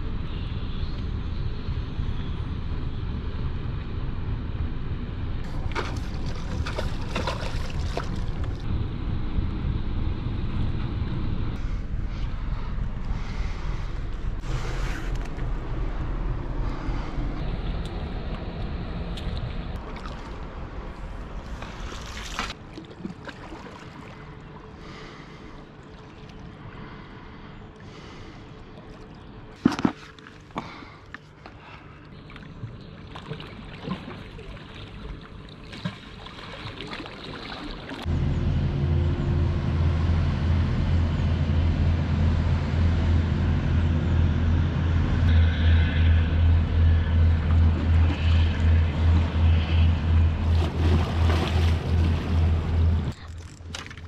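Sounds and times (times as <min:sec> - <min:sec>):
barge diesel engine drone: 0:00.0 - 0:23.0, 0:23.6 - 0:36.2, 0:37.8 - 0:54.0
water sloshing: 0:05.4 - 0:08.6, 0:19.1 - 0:27.1, 0:27.8 - 0:38.1, 0:47.3 - 0:54.0.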